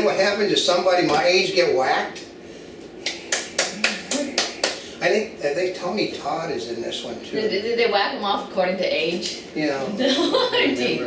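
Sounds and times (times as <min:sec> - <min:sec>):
sharp hand claps: 0:03.0 - 0:04.9.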